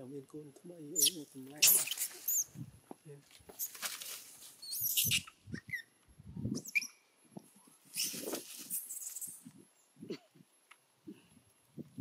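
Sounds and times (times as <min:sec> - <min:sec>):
monkey high squeaks: 0:01.0 - 0:02.5, 0:03.6 - 0:03.9, 0:04.6 - 0:05.9, 0:06.5 - 0:07.0, 0:07.9 - 0:09.4
monkeys scuffling in dry leaves: 0:01.0 - 0:02.5, 0:03.6 - 0:05.2, 0:07.9 - 0:09.4.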